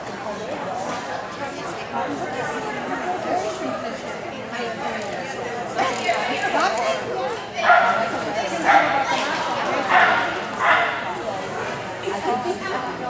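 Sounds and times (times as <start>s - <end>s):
dog barking: 7.6s - 8.0s, 8.7s - 9.0s, 9.9s - 11.0s.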